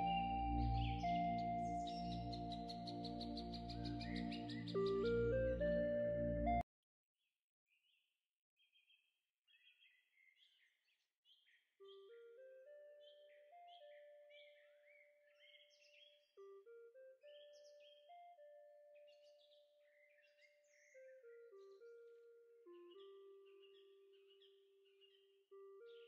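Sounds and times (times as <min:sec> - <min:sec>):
bird-like chirps: 0:00.0 - 0:05.6, 0:08.6 - 0:16.6, 0:17.2 - 0:22.1, 0:22.7 - 0:26.0
faint slow background music: 0:00.0 - 0:06.6.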